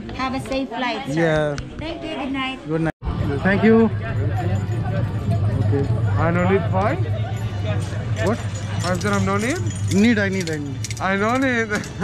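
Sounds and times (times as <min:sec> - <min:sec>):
metallic clinks and jingles: 0:04.0 - 0:12.0.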